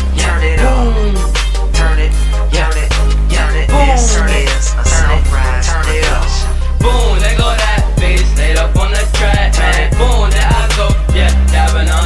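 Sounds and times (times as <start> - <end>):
bass hit: 0.0 - 11.6
hip-hop track: 0.0 - 12.0
deep bass note: 0.2 - 10.3.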